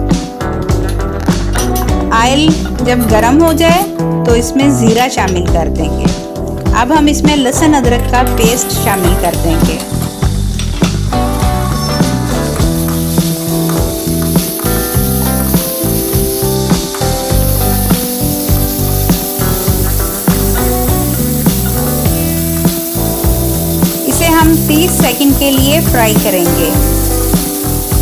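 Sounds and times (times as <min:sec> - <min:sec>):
background music: 0:00.0 - 0:28.0
paste sizzling in hot oil: 0:08.3 - 0:28.0.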